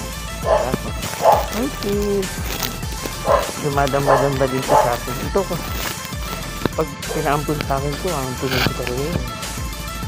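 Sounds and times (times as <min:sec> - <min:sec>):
background music: 0:00.0 - 0:10.0
dog barking: 0:00.4 - 0:05.9, 0:07.0 - 0:07.5.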